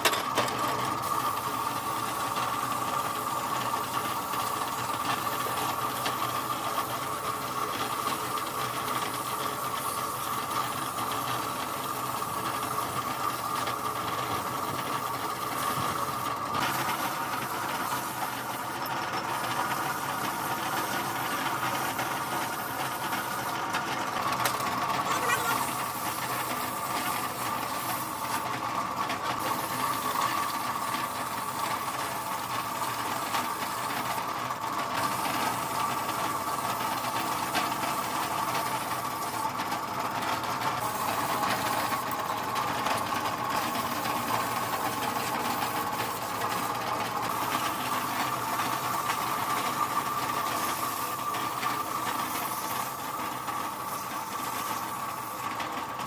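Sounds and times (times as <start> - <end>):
mechanical hum: 0.0 - 56.0
spray gun hissing: 1.0 - 23.6, 25.1 - 28.4, 29.4 - 34.1, 40.8 - 42.2, 43.6 - 55.6.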